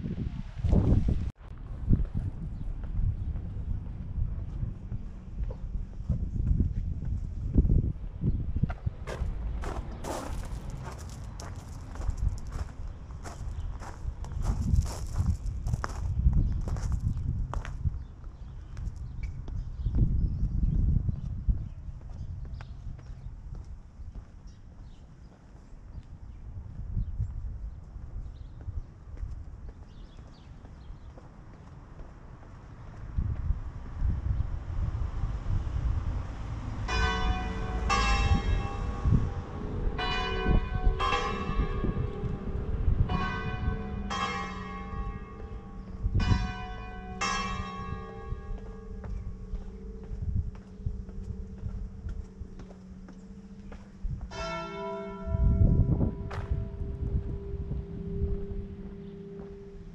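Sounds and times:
footsteps on stone: 8.7 - 17.8, 47.2 - 55.4, 56.2 - 59.6
low rumble: 33.2 - 59.9
church bells ringing: 36.8 - 59.9.

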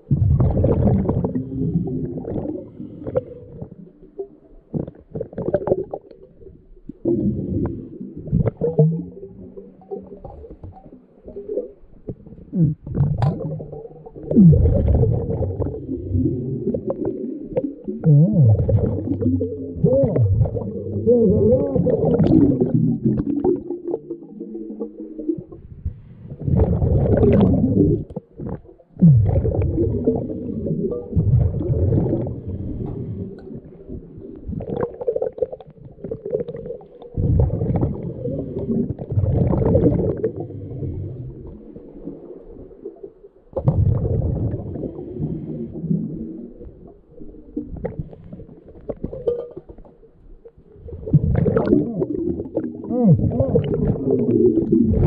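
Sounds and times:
underwater breath bubbles gurgling: 0.0 - 55.0.

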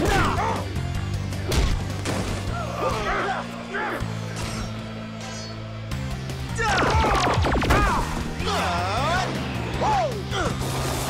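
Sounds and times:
punches and hits: 0.0 - 0.6, 1.3 - 3.2
fighters grunting and yelling: 0.0 - 0.9, 2.5 - 5.1, 6.3 - 10.6
action score music: 0.0 - 11.0.

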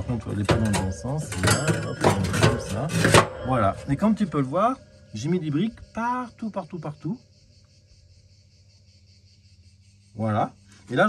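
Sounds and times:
low steady hum: 0.0 - 7.4
insects chirring: 0.0 - 11.0.

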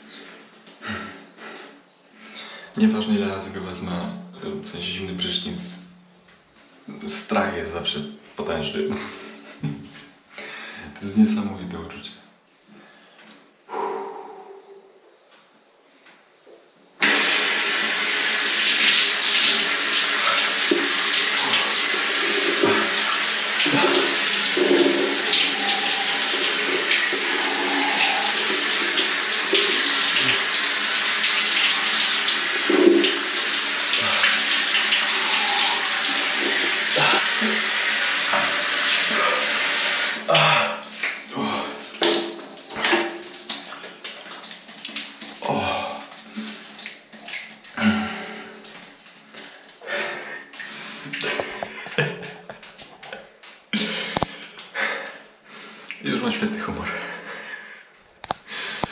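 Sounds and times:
shower water spraying: 17.0 - 46.9.

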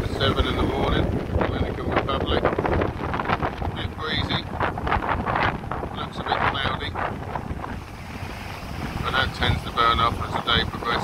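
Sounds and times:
surf washing onto beach: 0.0 - 11.0
wind buffeting microphone: 0.0 - 11.0.

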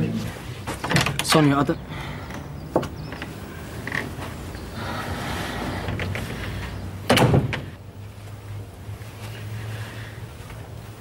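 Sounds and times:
front door opening: 0.6 - 7.8.

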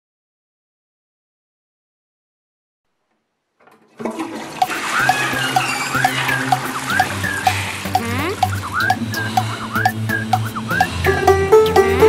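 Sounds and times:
toilet flushing: 3.7 - 12.0
music with beat and bass: 4.6 - 12.0.

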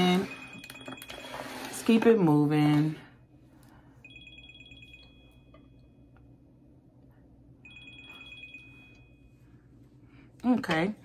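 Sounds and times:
electronic ringing tone: 0.0 - 1.6, 4.0 - 5.7, 7.6 - 9.3.

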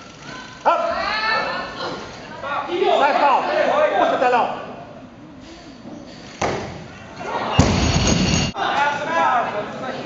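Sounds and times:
barbell dropped on platform: 7.6 - 8.5.

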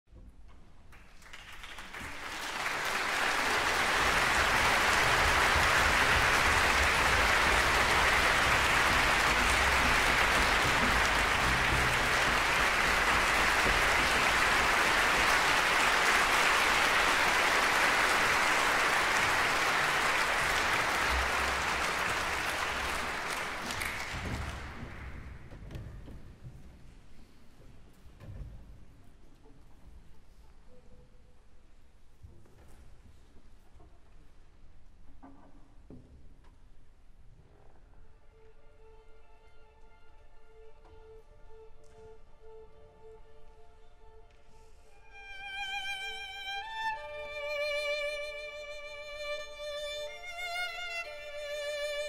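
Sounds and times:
audience applauding: 0.9 - 25.6.

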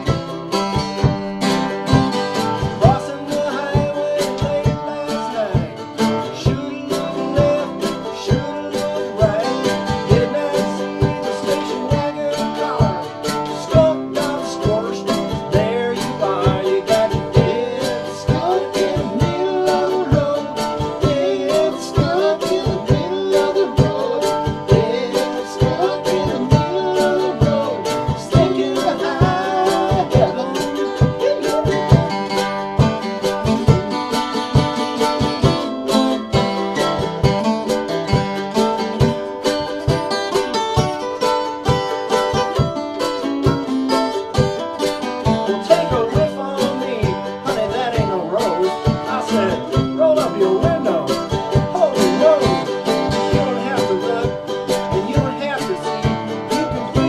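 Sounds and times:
mandolin and acoustic guitar strumming: 0.0 - 57.0.

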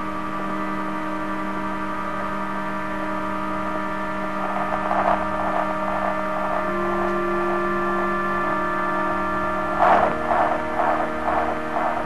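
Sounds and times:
grainy noise haze: 0.0 - 12.0
sustained humming drone tones: 0.0 - 12.0.

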